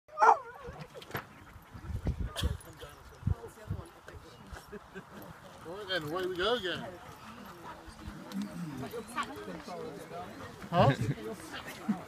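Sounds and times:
dog barking and whining: 0:00.1 - 0:00.7.

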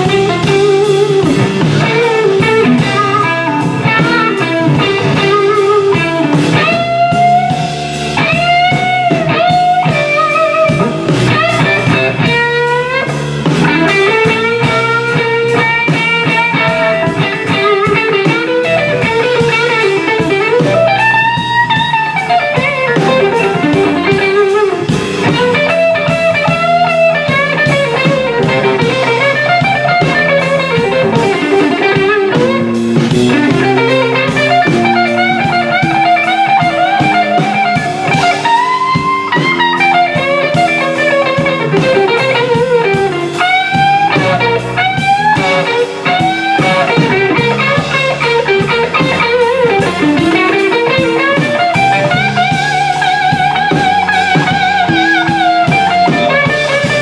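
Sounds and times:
bass guitar: 0:00.0 - 0:57.0
drums: 0:00.0 - 0:57.0
electric guitar solo: 0:00.0 - 0:57.0.

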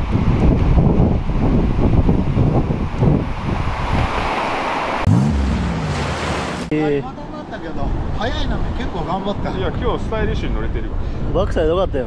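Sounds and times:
wind buffeting microphone: 0:00.0 - 0:04.4
ocean surf breaking: 0:03.7 - 0:08.1.

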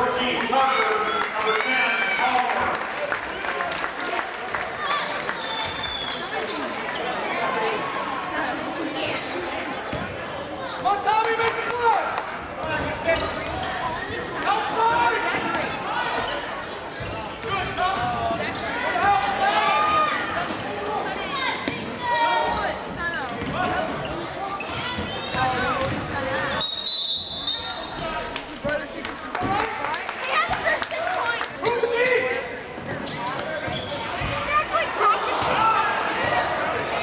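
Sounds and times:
referee's whistle: 0:05.3 - 0:06.2, 0:26.6 - 0:28.0.

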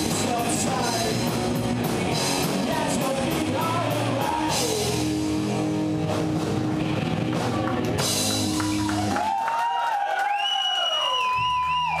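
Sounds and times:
low bass drone: 0:00.0 - 0:09.0.

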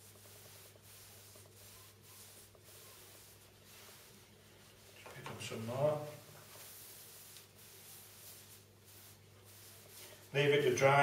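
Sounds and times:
foam brush swishes: 0:00.0 - 0:11.0.

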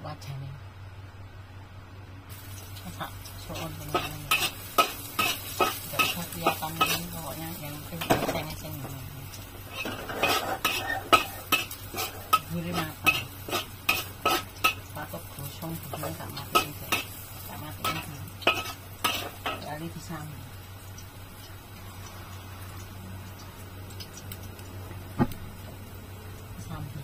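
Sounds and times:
food sizzling: 0:02.3 - 0:27.0.

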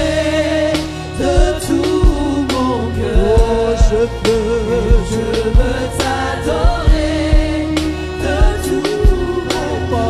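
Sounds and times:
instrumental accompaniment: 0:00.0 - 0:10.0
steady drum beat: 0:00.0 - 0:10.0
women singing in harmony: 0:00.0 - 0:10.0.

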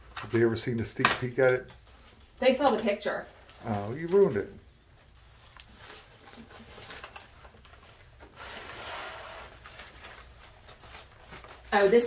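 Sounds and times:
plastic wrap rustling: 0:00.0 - 0:12.0.

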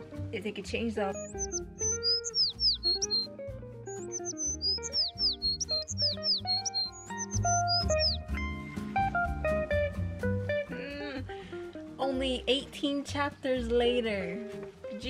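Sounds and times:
plucked guitar notes: 0:01.1 - 0:12.0
bass line: 0:01.2 - 0:08.6.

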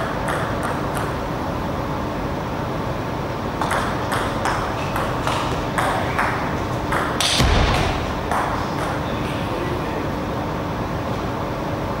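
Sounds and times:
table tennis ball bouncing: 0:00.0 - 0:01.2, 0:03.6 - 0:09.0
steady background hum: 0:00.0 - 0:12.0.

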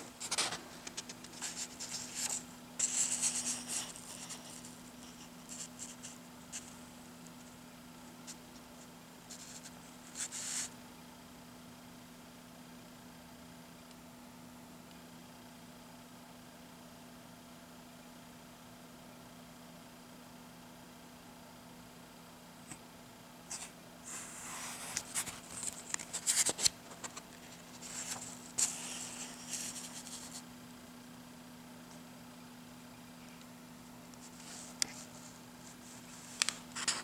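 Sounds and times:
comic book pages rustling: 0:00.0 - 0:10.7, 0:23.5 - 0:30.5, 0:34.2 - 0:37.0
page turning: 0:00.1 - 0:06.8, 0:23.5 - 0:30.4, 0:36.0 - 0:37.0.

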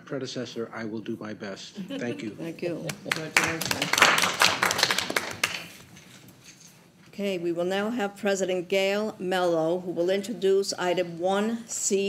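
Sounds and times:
small group applauding: 0:02.9 - 0:05.8.

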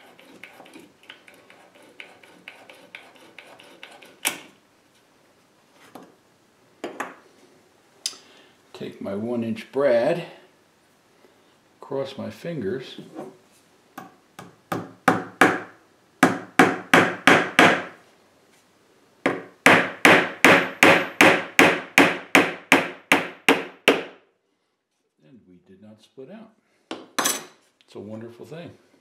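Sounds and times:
hammer striking nail into wood: 0:14.0 - 0:17.9, 0:19.3 - 0:24.2.

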